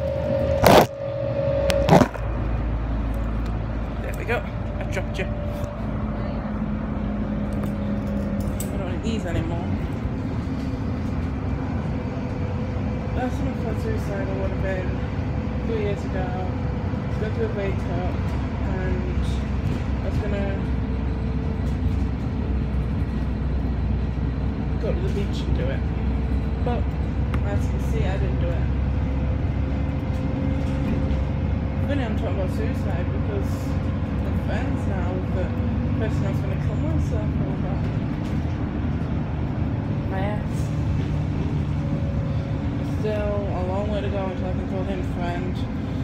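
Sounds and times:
bus engine rumble: 0.0s - 46.0s.

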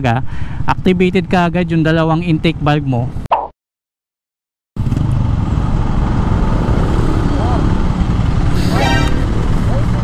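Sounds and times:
street traffic: 0.0s - 3.3s, 4.8s - 10.0s.

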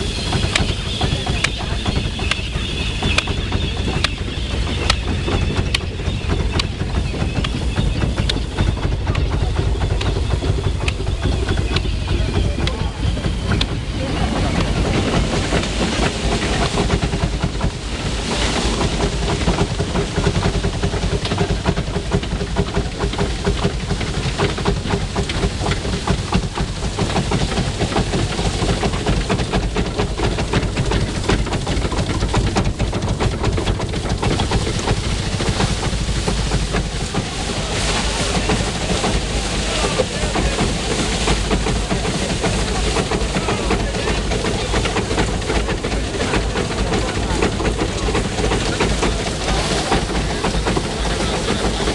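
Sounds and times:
threshing machine rumbling and rattling: 0.0s - 51.9s.

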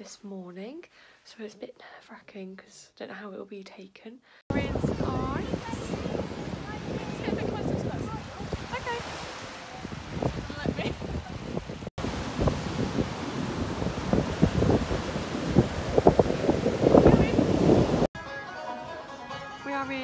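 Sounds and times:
surf breaking on a beach: 4.5s - 18.1s
wind gusting on microphone: 4.5s - 18.1s
plucked string music: 18.2s - 20.0s.

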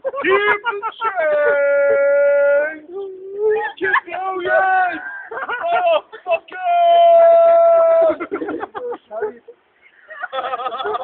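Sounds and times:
person shouting drunkenly: 1.2s - 8.2s.

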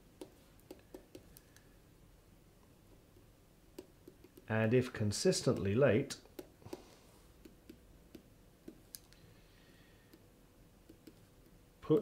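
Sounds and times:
clicks and taps of writing: 0.2s - 1.7s, 2.9s - 4.5s, 5.4s - 9.2s, 10.8s - 11.6s
person speaking: 4.3s - 7.0s, 11.8s - 12.0s.

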